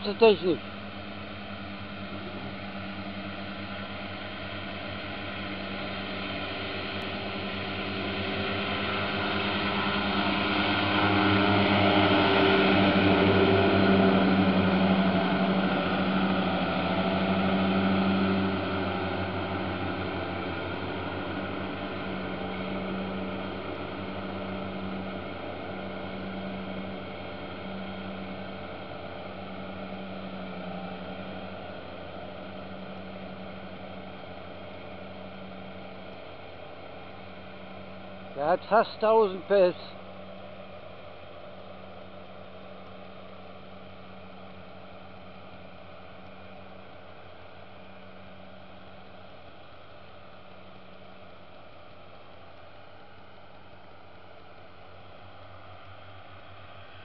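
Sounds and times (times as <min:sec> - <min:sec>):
swath mower mowing: 0:00.0 - 0:48.9.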